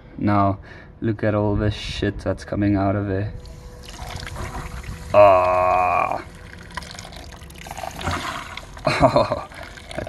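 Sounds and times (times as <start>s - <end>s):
water splashing into a bucket: 6.0s - 10.0s.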